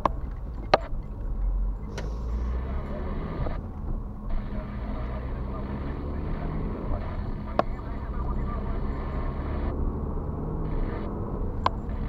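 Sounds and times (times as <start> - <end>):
car engine and tyre noise: 0.0 - 12.0.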